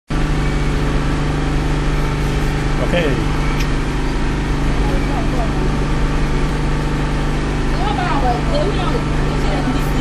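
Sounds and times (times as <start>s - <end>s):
generator engine humming: 0.1s - 10.0s.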